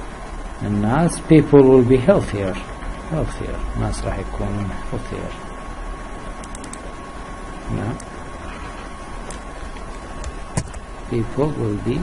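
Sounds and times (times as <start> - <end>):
background hiss: 0.0 - 12.0
computer click: 6.4 - 6.9.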